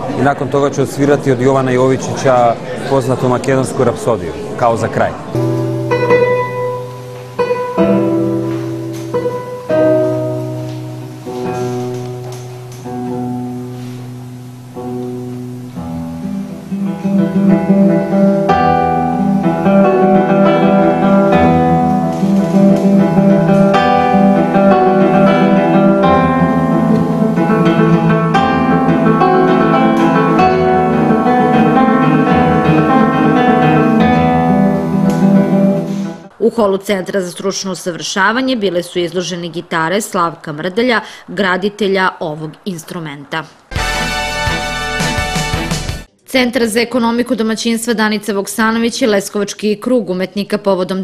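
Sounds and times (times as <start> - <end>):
classical guitar plucking: 5.2 - 36.4.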